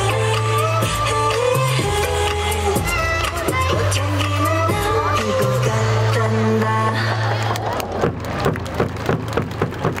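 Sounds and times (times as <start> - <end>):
crowd clapping in rhythm: 3.2 - 10.0.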